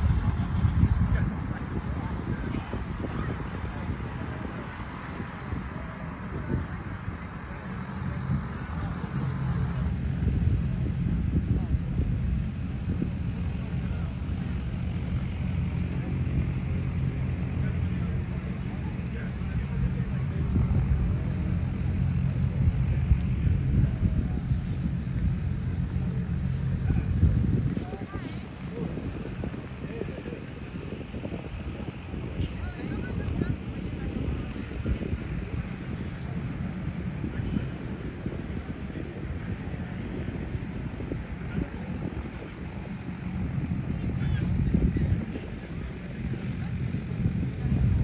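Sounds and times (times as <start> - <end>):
low rumble: 0.0 - 48.0
propeller aircraft engines droning: 0.0 - 48.0.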